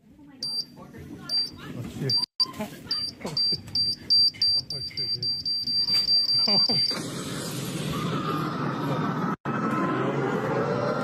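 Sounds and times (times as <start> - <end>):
accelerating electronic beeps: 2.1 - 7.1.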